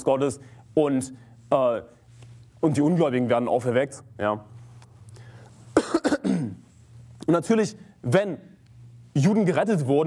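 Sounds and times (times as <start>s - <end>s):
man coughing: 5.8s - 6.7s.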